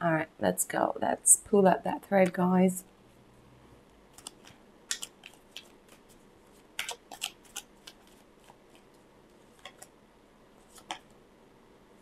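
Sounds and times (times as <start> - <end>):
cards being shuffled by hand: 4.1 - 9.9.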